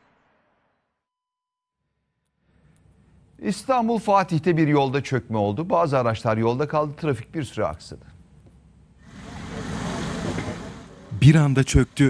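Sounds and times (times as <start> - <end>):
vehicle passing on street: 9.1 - 11.1.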